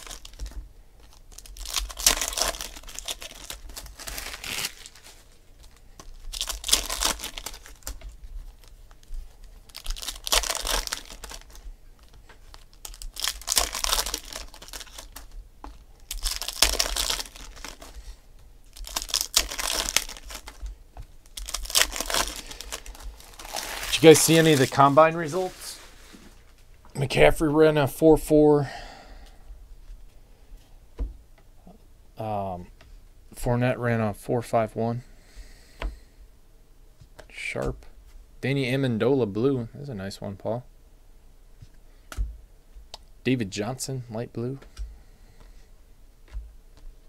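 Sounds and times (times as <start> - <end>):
foil wrappers crinkling and tearing: 0.0 - 26.2.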